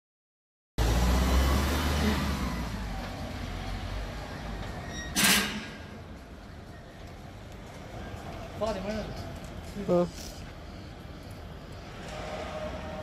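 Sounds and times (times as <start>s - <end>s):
van engine driving off: 0.8s - 4.8s.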